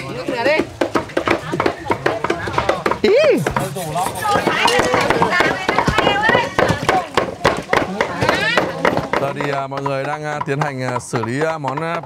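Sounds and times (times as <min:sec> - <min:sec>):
knife chopping on wooden block: 0:00.1 - 0:12.0.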